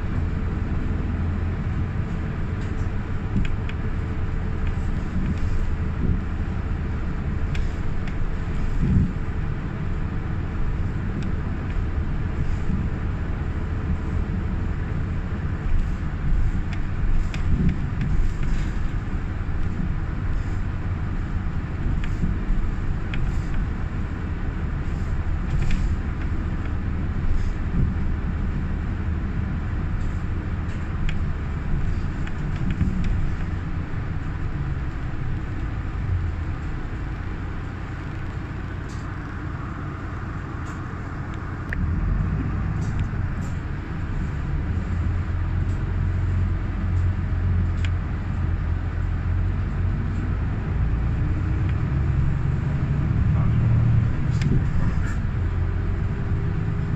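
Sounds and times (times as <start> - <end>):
bus engine and road noise drone: 0.0 - 56.9.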